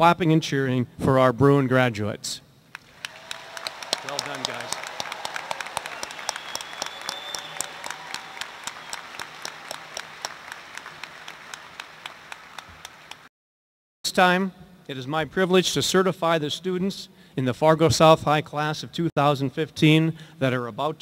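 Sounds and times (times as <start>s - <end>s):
large audience clapping: 2.7s - 13.3s
voices cheering: 2.9s - 12.9s.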